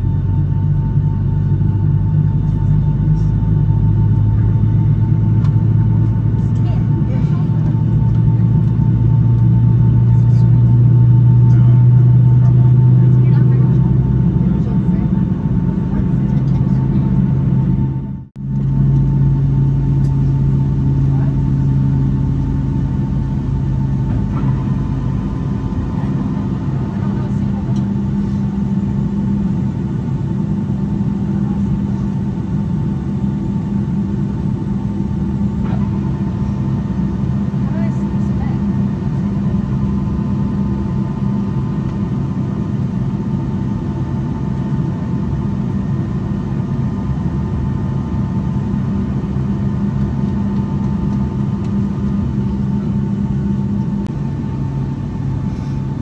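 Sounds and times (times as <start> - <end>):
airplane cabin engine drone: 0.0 - 56.0
low humming tones: 0.0 - 56.0.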